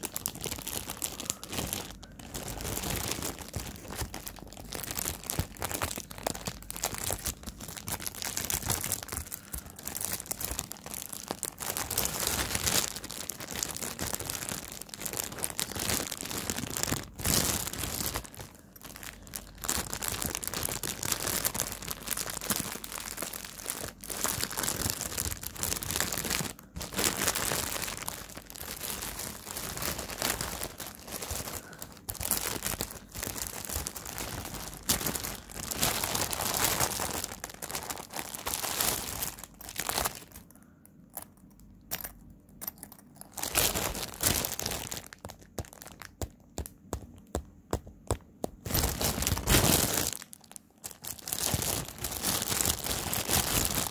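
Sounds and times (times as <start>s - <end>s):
plastic bag crinkling: 0.0s - 40.7s, 41.4s - 53.9s.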